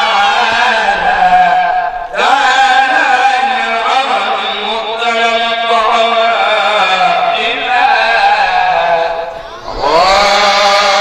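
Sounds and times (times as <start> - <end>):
man chanting into a microphone: 0.0 - 11.0.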